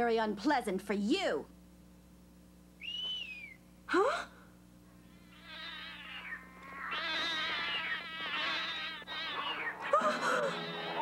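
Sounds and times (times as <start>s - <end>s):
cartoon animals howling: 5.5s - 11.0s.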